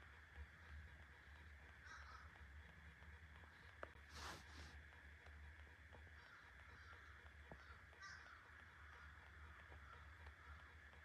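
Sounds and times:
crow cawing: 1.7s - 2.6s, 6.1s - 11.0s.

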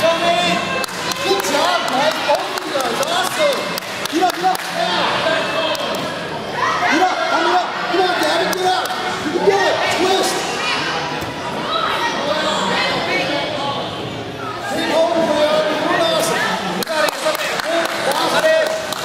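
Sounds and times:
people calling out and chattering: 0.0s - 19.0s.

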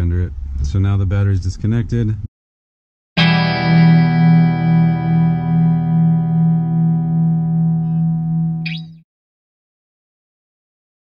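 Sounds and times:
guitar chord ringing: 3.2s - 9.0s.

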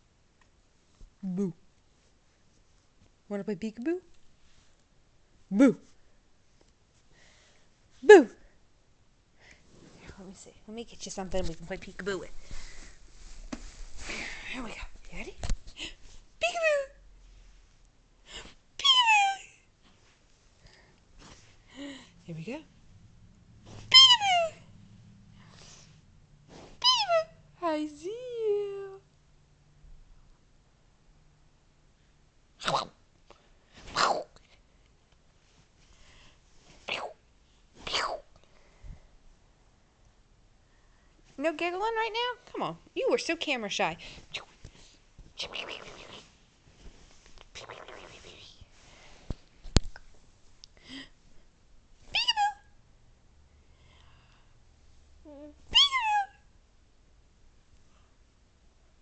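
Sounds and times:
baby squealing: 23.9s - 24.6s, 55.7s - 56.4s.

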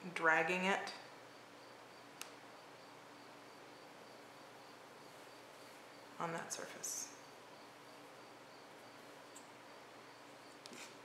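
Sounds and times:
small click: 2.2s - 2.4s.

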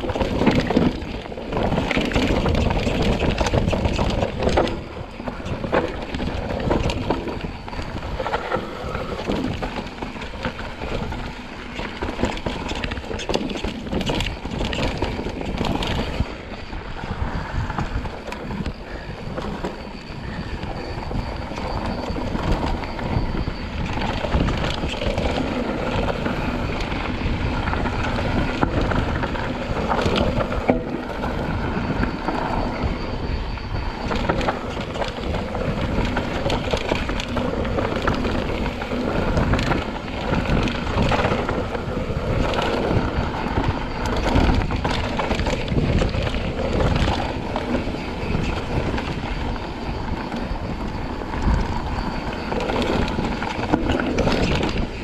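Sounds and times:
bike knocking and rattling: 0.0s - 55.0s
bike tyres on dirt: 0.0s - 55.0s
wind buffeting microphone: 0.0s - 55.0s.

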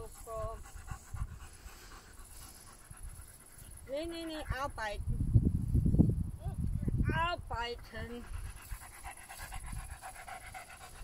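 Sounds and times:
dog panting: 0.0s - 4.7s, 7.8s - 11.0s.

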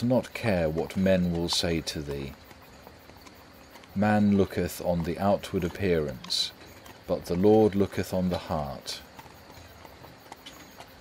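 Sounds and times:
horse hooves clip-clopping: 0.0s - 11.0s
soft steady background noise: 0.0s - 11.0s.

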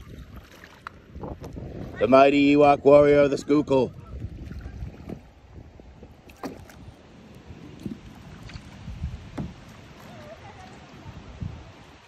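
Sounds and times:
paddle splashing in water: 0.0s - 12.0s
wind rumble on microphone: 0.0s - 12.0s.

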